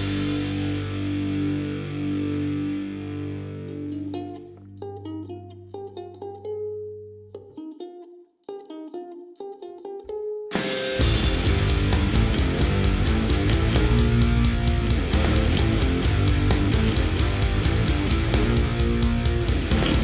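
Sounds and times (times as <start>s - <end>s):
heavy guitar band: 0.0s - 3.9s, 10.5s - 20.0s
distorted electric guitar chord: 0.0s - 4.2s, 10.6s - 20.0s
ukulele plucking a melody: 0.0s - 20.0s.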